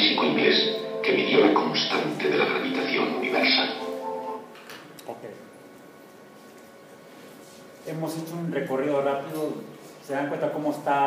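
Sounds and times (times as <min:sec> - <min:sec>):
voice over speakers: 0:00.0 - 0:04.1
background music: 0:00.0 - 0:04.6.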